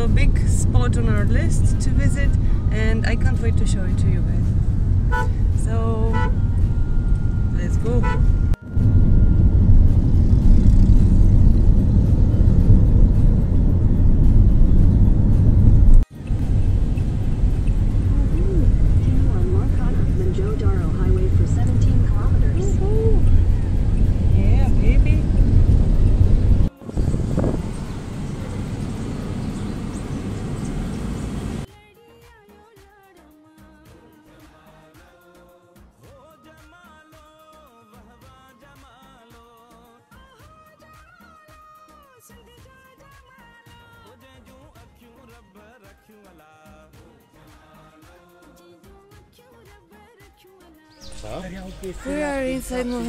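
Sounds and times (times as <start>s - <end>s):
car road and wind rumble: 0.0s - 31.7s
quiet music: 0.0s - 32.5s, 50.9s - 53.0s.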